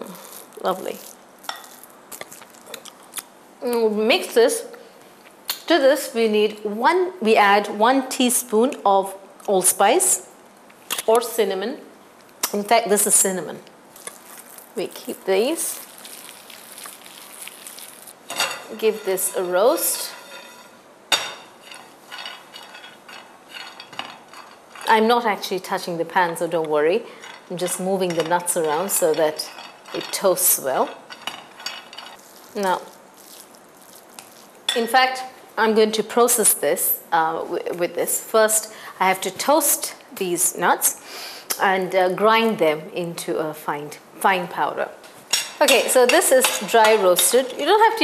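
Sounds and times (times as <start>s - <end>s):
person eating: 0.0s - 3.3s, 14.0s - 14.8s, 15.6s - 18.3s, 32.2s - 34.6s
nuts scraping and rattling in a pan: 14.1s - 20.8s, 21.5s - 25.6s, 27.1s - 34.6s.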